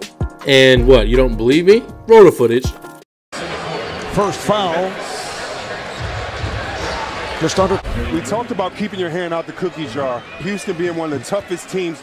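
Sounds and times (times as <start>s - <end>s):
arena crowd hubbub: 3.3s - 12.0s.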